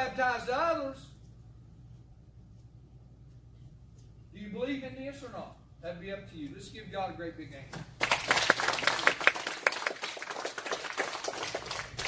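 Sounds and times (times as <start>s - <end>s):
people applauding: 8.0s - 12.0s.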